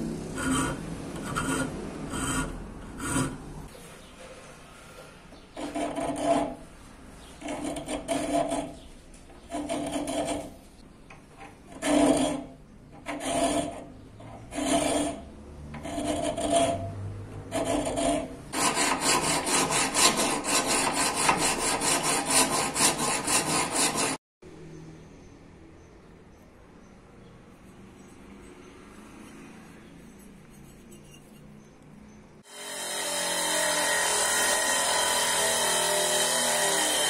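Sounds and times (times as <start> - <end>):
file rasping on steel blade: 0.3 - 3.7, 5.5 - 10.6, 11.7 - 24.2, 27.7 - 31.8, 32.4 - 37.0.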